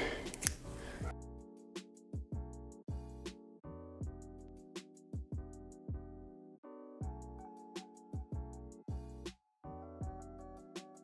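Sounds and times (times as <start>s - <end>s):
scissors snipping hair: 0.1s - 0.7s.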